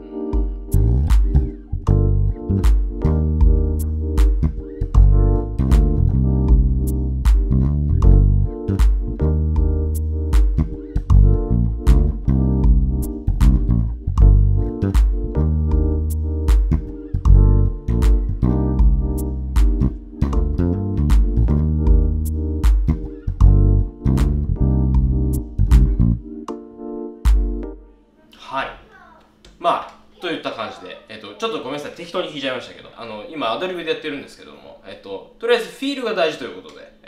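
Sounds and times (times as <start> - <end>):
fingered electric bass groove: 0.0 - 26.6
backing track chords: 0.0 - 28.2.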